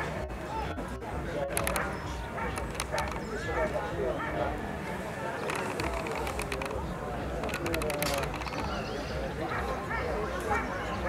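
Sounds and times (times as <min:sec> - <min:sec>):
indistinct voices talking: 0:00.0 - 0:11.0
short clicks: 0:01.5 - 0:01.9, 0:02.5 - 0:03.2, 0:05.4 - 0:06.8, 0:07.4 - 0:08.7.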